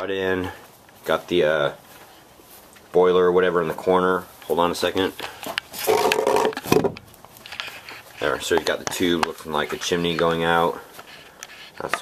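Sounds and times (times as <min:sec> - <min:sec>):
plastic pipe rubbing squeak: 0:05.8 - 0:06.6, 0:07.5 - 0:12.0.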